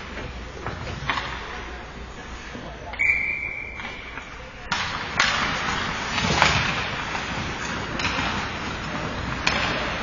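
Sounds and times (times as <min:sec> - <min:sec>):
hockey sticks clacking on ice: 0:00.1 - 0:01.6, 0:03.8 - 0:10.0
sharp crack of stick or puck: 0:04.7 - 0:10.0
skate blades scraping ice: 0:05.0 - 0:10.0.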